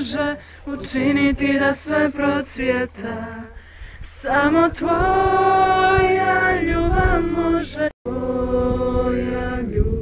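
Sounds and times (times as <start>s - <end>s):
mixed voices singing: 0.0s - 10.0s.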